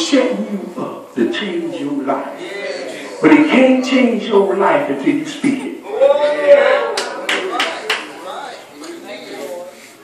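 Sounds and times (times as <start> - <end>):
hand claps: 6.9 - 8.1.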